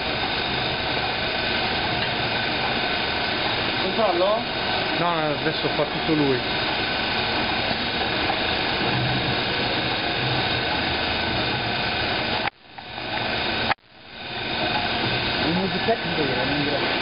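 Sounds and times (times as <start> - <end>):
roller conveyor running: 0.0 - 17.0.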